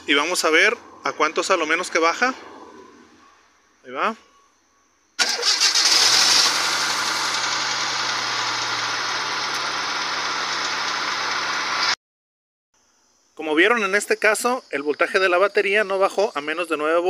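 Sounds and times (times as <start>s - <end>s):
car starter cranking: 5.2s - 10.9s
car engine idling: 5.2s - 12.0s.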